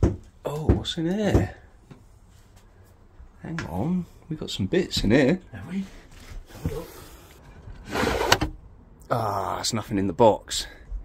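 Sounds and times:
wooden lid scraping: 6.5s - 8.6s.

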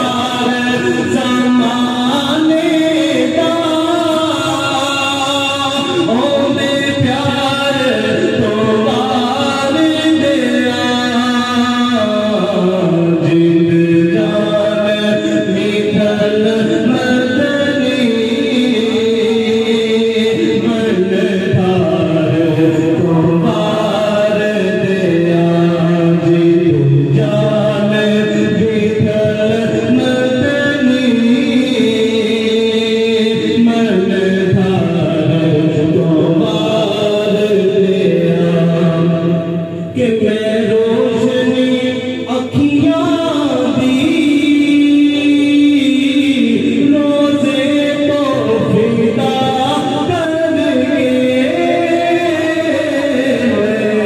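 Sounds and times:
devotional chanting: 0.0s - 54.0s.

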